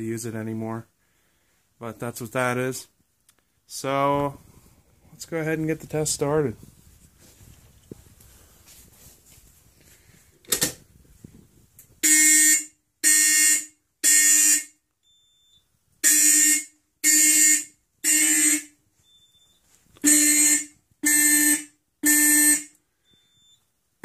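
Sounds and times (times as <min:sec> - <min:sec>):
fire alarm horn blasts: 0:12.0 - 0:14.8, 0:16.0 - 0:18.8, 0:19.4 - 0:22.8.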